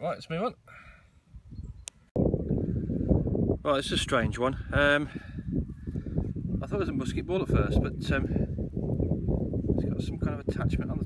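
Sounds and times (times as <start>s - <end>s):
low rumbling on microphone: 1.3s - 11.0s.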